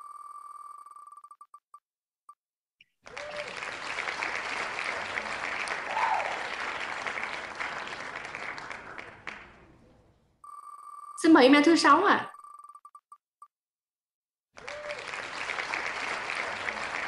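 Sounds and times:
canned applause: 3.1 - 10.2, 14.6 - 17.0.

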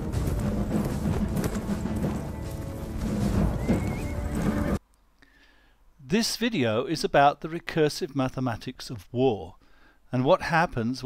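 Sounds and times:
charging army noise: 0.0 - 4.8
film soundtrack music: 0.0 - 4.8.

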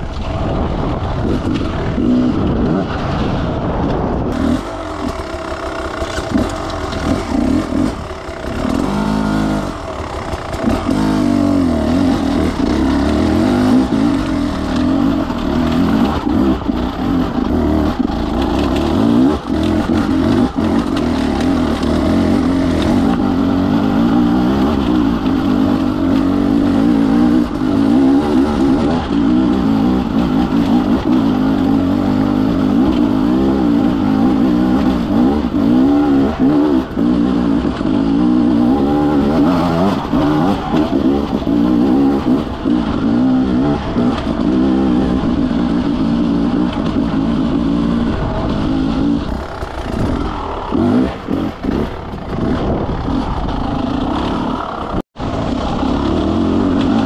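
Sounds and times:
dirt bike engine revving: 0.8 - 57.0
stones and chassis clattering: 3.8 - 44.6.

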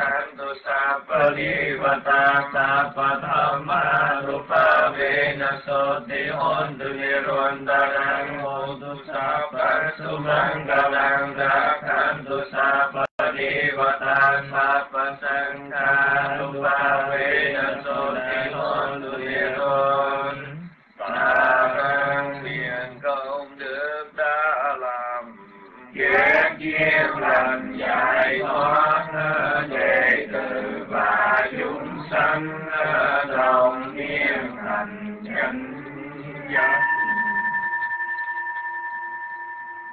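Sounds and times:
slow monastic chanting: 0.0 - 37.9
struck bell ringing: 36.6 - 39.9.

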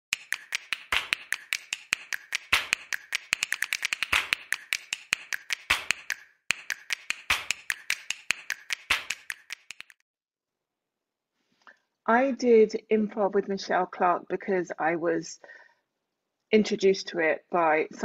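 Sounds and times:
percussive snaps and clicks: 0.1 - 10.0.

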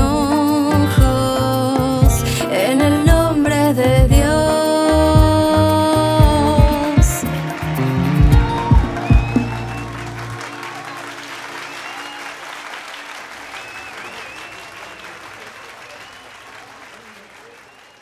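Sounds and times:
drum hits: 4.0 - 4.5, 5.2 - 5.6, 6.2 - 10.4
song final chord: 4.4 - 11.3
audience applause and cheering: 6.5 - 18.0.

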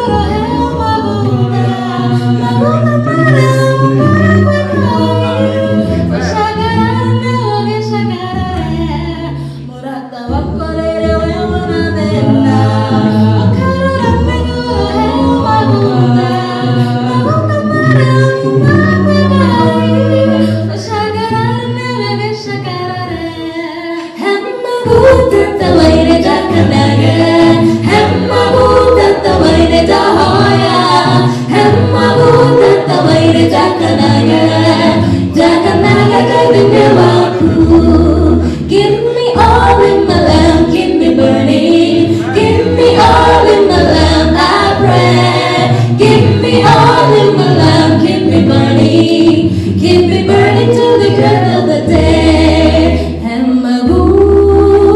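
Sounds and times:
vocal group singing in harmony: 0.0 - 54.9.

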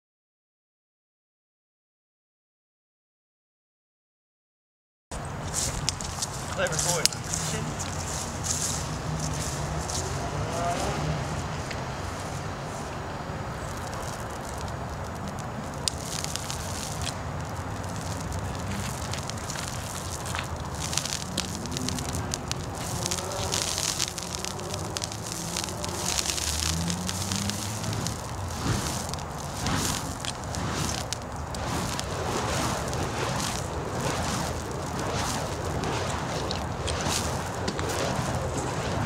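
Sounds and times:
fire poi whooshing: 5.2 - 39.0.

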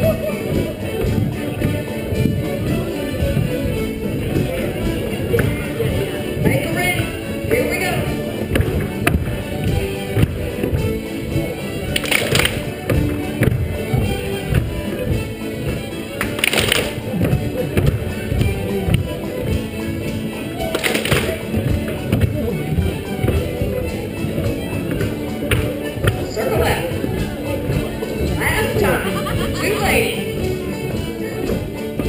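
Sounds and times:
dance band playing lively tune: 0.0 - 32.0
dancers' feet on wooden floor: 0.0 - 32.0.

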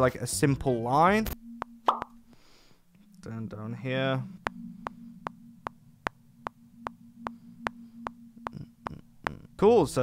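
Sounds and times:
held synth note: 0.9 - 9.7.

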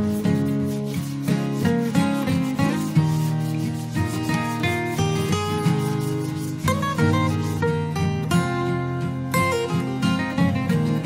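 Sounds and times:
sandpaper rubbing on wood: 0.0 - 7.9
acoustic guitar music: 0.0 - 11.0.

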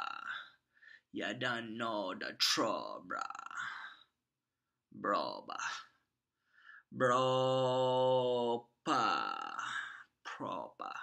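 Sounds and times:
man's gravelly throat rattle: 3.1 - 3.8, 8.9 - 11.0.

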